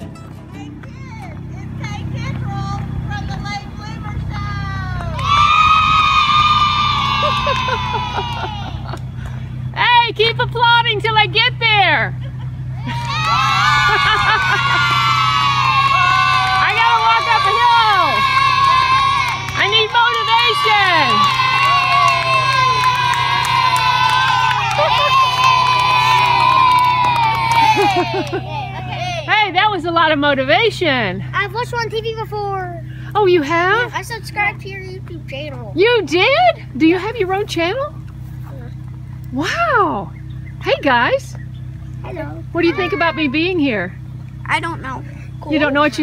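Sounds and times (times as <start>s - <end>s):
steady low hum: 0.0s - 46.0s
children calling out: 4.7s - 9.0s, 12.7s - 29.3s, 42.1s - 43.7s
children shouting in unison: 5.1s - 9.0s, 12.8s - 29.3s, 42.6s - 43.4s.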